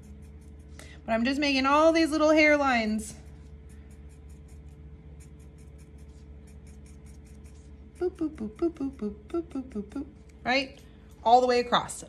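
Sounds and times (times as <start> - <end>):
marker scratching on paper: 0.0 - 1.5, 3.3 - 8.2
faint low hum: 0.0 - 12.0.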